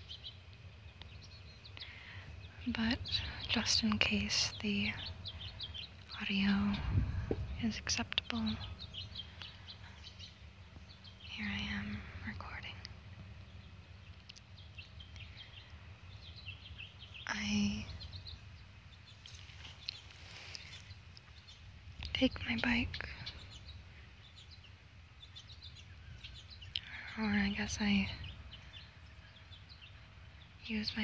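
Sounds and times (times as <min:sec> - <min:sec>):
faint bird chirps: 0:00.0 - 0:31.0
wind buffeting microphone: 0:02.3 - 0:09.6.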